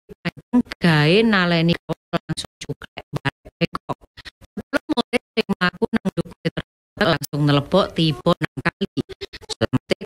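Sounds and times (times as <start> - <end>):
stuttering chopped voice: 0.1 - 10.0.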